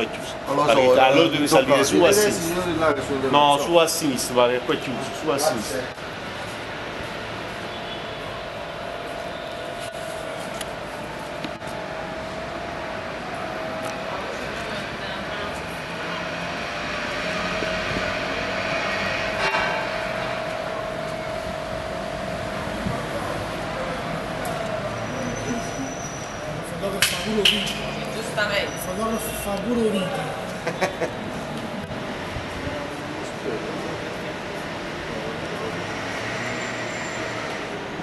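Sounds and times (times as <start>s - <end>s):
city street noise: 0.0s - 38.0s.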